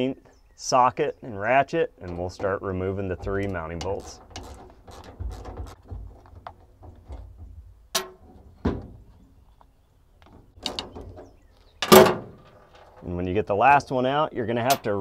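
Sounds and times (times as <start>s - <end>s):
loud metal clunk: 11.8s - 12.6s.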